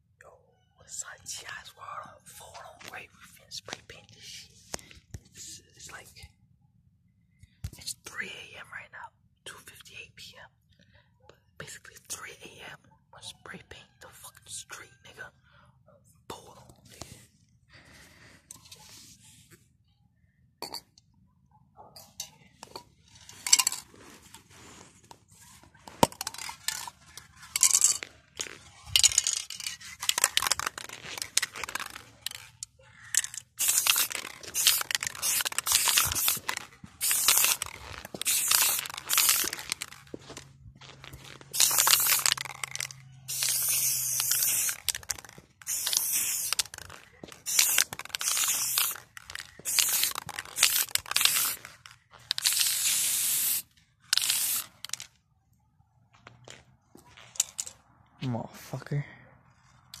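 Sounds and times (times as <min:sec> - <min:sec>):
spray paint can hissing: 0:26.0 - 0:26.9, 0:27.5 - 0:40.4, 0:41.4 - 0:55.1.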